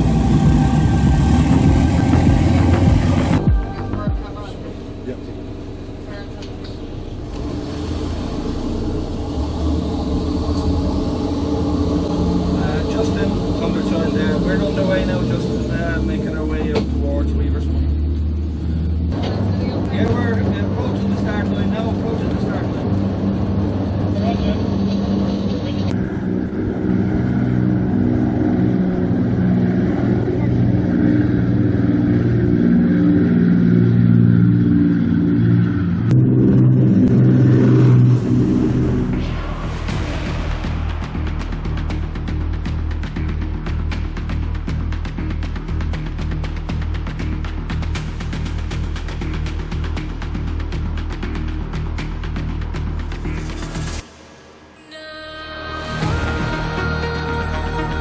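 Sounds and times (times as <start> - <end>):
powerboat engine drone: 0.0 - 58.0.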